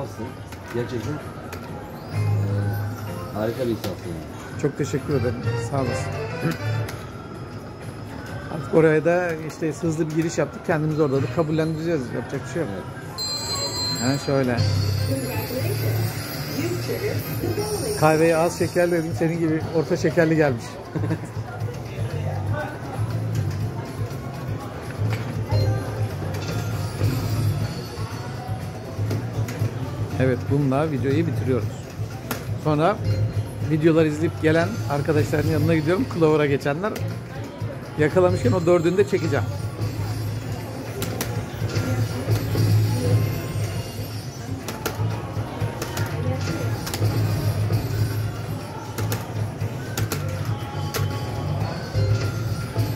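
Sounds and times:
slot machine bonus music: 0:04.7 - 0:07.1, 0:13.2 - 0:20.6, 0:25.5 - 0:28.8, 0:38.2 - 0:45.4, 0:46.3 - 0:52.9
slot machine music with pulsing bass: 0:04.9 - 0:06.9, 0:25.5 - 0:28.3, 0:46.2 - 0:48.7, 0:49.3 - 0:52.9.

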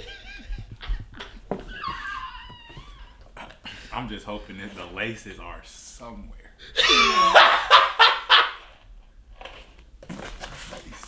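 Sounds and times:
man laughing: 0:00.0 - 0:03.9, 0:06.7 - 0:08.7.

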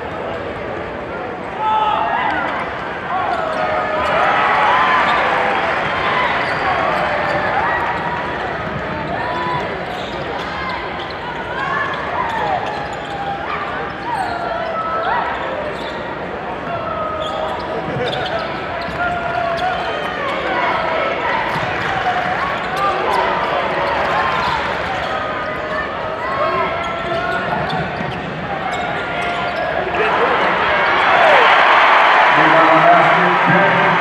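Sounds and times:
crowd calling and cheering: 0:00.0 - 0:34.0
sneakers squeaking on hardwood: 0:17.2 - 0:20.5.

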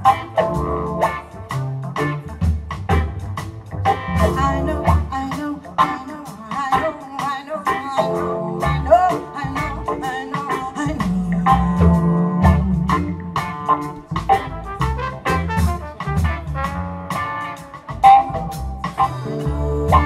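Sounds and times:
melodic lead line: 0:00.0 - 0:05.5, 0:08.0 - 0:20.0
bass line: 0:00.0 - 0:06.9, 0:08.0 - 0:20.0
drum kit beat: 0:00.0 - 0:20.0
guitar: 0:00.0 - 0:20.0.

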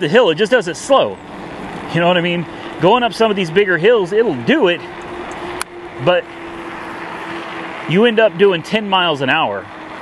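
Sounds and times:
electric motor hum: 0:04.3 - 0:08.0.

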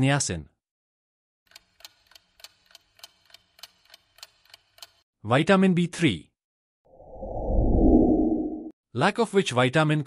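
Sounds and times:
faint clock ticks: 0:01.5 - 0:05.0.

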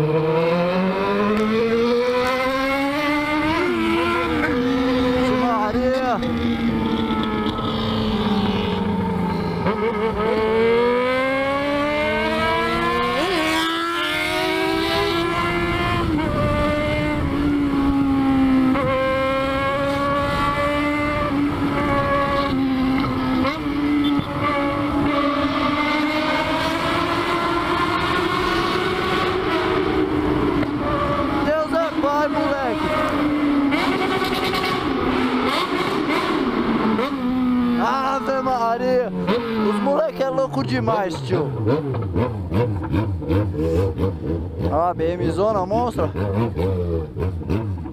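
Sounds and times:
motorcycle engine revving: 0:00.0 - 0:47.9.

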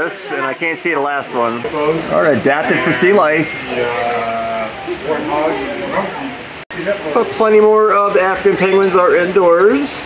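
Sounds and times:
penguins calling: 0:02.8 - 0:06.4.

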